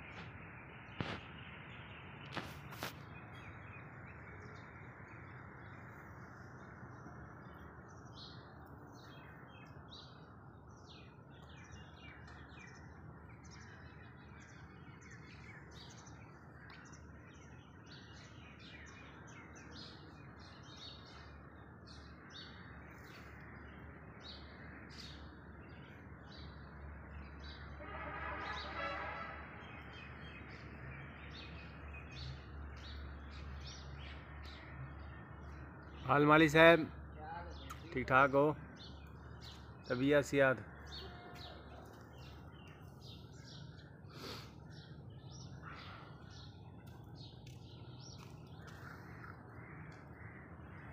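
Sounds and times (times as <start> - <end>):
small birds chirping: 29.7 - 50.9.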